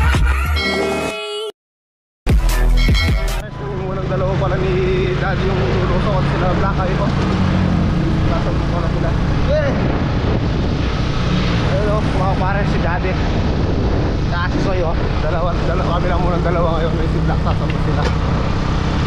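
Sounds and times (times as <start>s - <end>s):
road noise: 2.5s - 19.0s
wind: 2.8s - 19.0s
voices: 3.4s - 7.4s.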